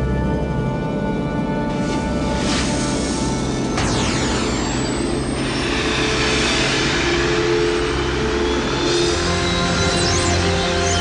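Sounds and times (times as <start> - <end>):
low drone: 0.0 - 11.0
jet-like whoosh: 2.2 - 10.3.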